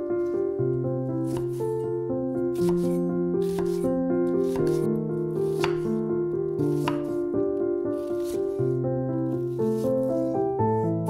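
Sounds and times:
gentle background music: 0:00.0 - 0:11.0
knife strokes on cutting board: 0:03.4 - 0:03.8, 0:04.4 - 0:04.8, 0:08.0 - 0:08.5.

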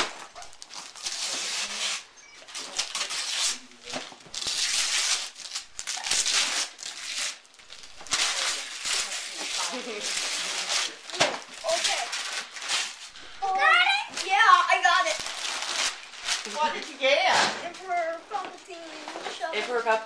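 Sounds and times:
wrapping paper tearing: 0:00.0 - 0:20.0
child's excited vocal sounds: 0:13.4 - 0:15.2.

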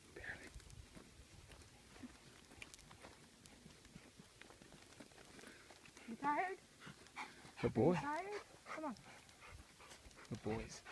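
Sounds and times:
dog panting: 0:03.4 - 0:10.9
woman coaxing dogs: 0:07.7 - 0:09.1.

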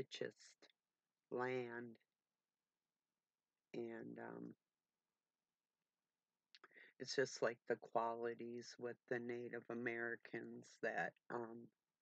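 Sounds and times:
woman talking: 0:07.0 - 0:11.6.

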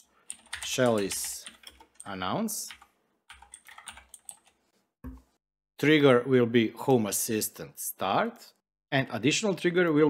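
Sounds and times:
faint computer keyboard typing: 0:00.0 - 0:04.6.

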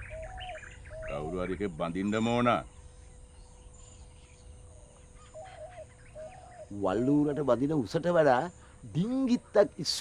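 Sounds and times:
faint bird calls: 0:00.0 - 0:10.0
rural background ambience: 0:00.0 - 0:10.0.

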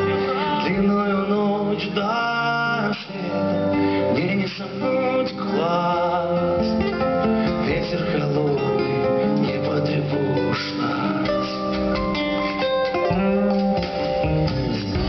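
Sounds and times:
acoustic guitar playing: 0:00.0 - 0:15.0
melody of long held notes: 0:00.0 - 0:15.0.

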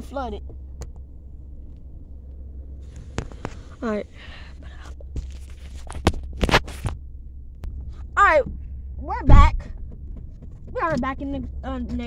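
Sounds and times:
low cabin hum: 0:00.0 - 0:12.0.

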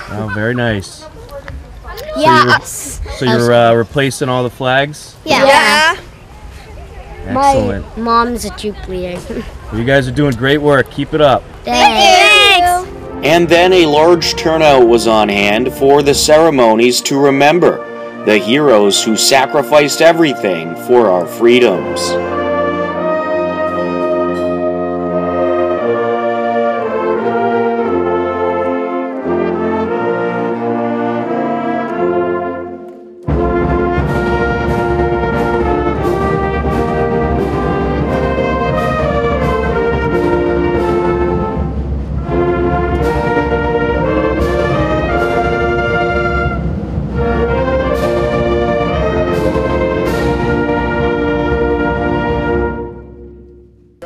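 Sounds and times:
concert band playing chords: 0:29.2 - 0:54.0.

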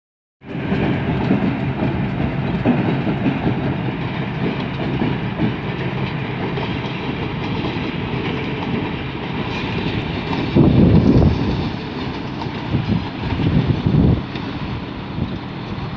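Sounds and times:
diesel locomotives rumbling: 0:00.4 - 0:15.9.

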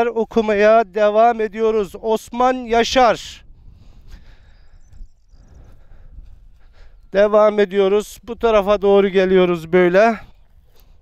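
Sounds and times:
wind rumble: 0:00.0 - 0:11.0.

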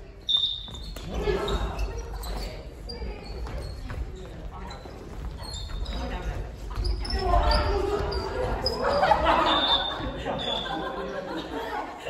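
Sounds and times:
shoe squeaks: 0:00.0 - 0:11.0.

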